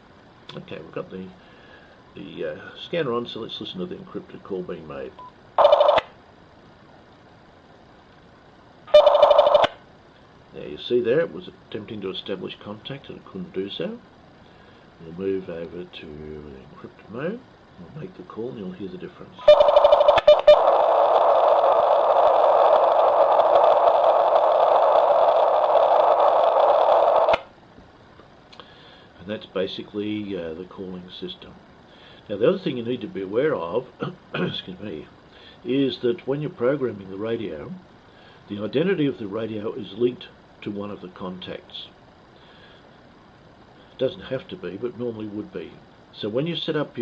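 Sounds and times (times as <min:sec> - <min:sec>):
faint radio hiss: 0:00.0 - 0:47.0
digital radio signal bursts: 0:05.6 - 0:06.1, 0:08.9 - 0:09.8, 0:19.4 - 0:27.4.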